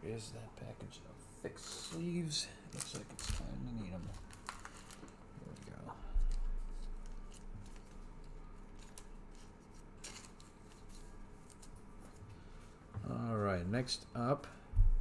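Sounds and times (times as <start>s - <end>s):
cards and sleeves rustling: 1.6s - 13.6s.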